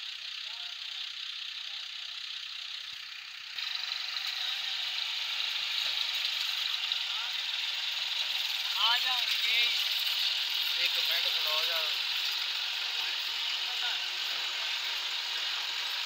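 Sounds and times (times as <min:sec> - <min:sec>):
tractor engine running: 0:00.0 - 0:16.0.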